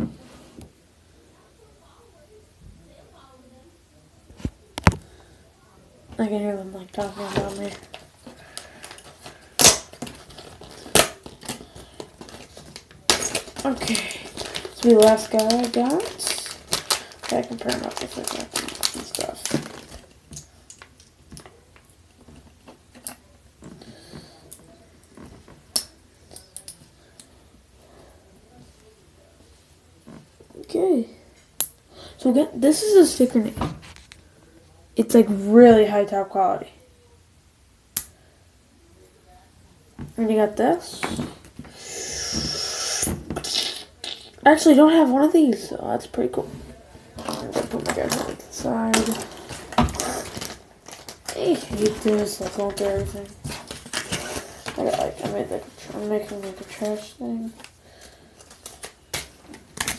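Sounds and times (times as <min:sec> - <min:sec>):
plastic packaging rustle: 0:06.8 - 0:25.7, 0:44.5 - 0:59.9.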